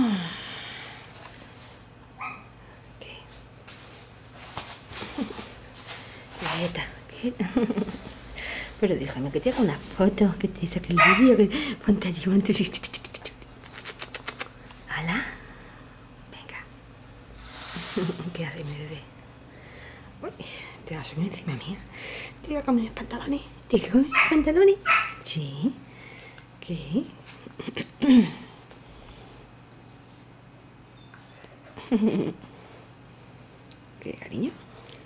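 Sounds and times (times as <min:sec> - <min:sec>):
woman murmuring: 0:00.0 - 0:00.5, 0:26.7 - 0:28.6
puppy high-pitched cry: 0:11.0 - 0:11.4
puppy claws clicking on hard floor: 0:13.7 - 0:14.6.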